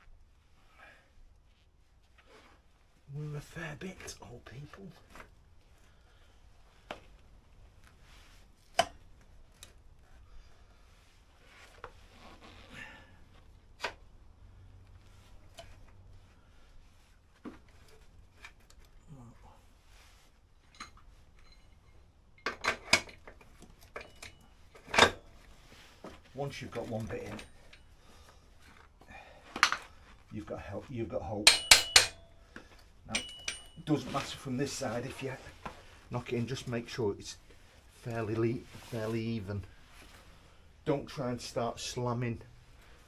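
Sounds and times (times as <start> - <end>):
metallic clinks and knocks: 20.6 - 25.3, 31.5 - 34.1.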